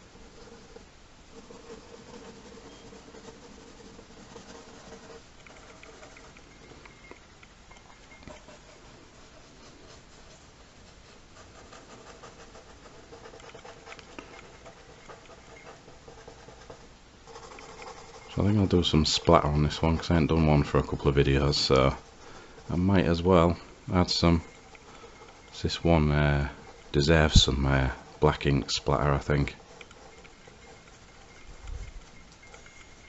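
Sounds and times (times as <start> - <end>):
pencil scratching on paper: 0.0 - 7.0, 8.2 - 33.0.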